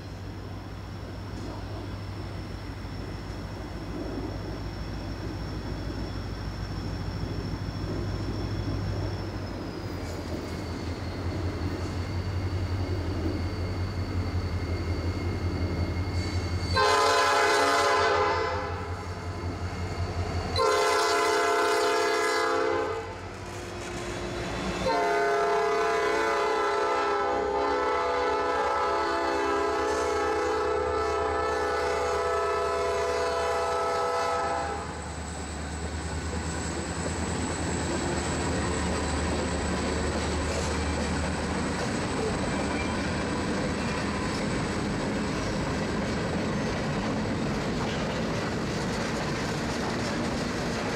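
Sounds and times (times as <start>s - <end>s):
diesel locomotive engine rumble: 0.0s - 50.9s
train rolling past: 0.0s - 50.9s
locomotive air horn blasts: 16.7s - 19.0s, 20.6s - 35.0s.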